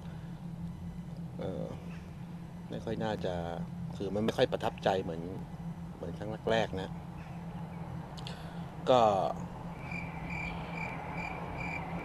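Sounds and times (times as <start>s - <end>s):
low steady hum: 0.0s - 12.0s
cricket chirping: 9.6s - 12.0s.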